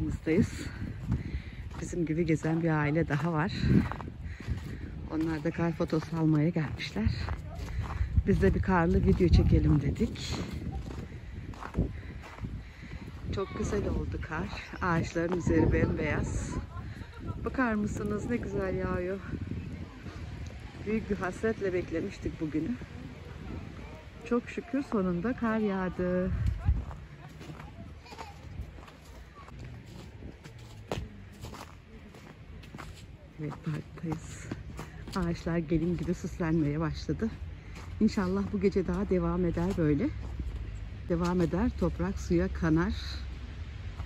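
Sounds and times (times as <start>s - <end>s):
footsteps in snow: 0.0s - 42.4s
wind rumble on microphone: 0.0s - 44.0s.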